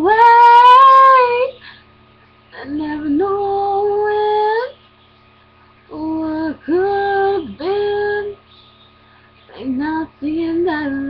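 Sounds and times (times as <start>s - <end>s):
woman singing unaccompanied: 0.0s - 1.6s, 2.6s - 4.8s, 5.9s - 8.5s, 9.5s - 11.0s.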